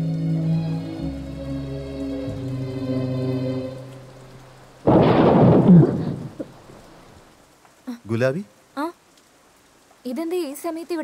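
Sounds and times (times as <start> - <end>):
loud thunderclap: 4.8 - 6.8.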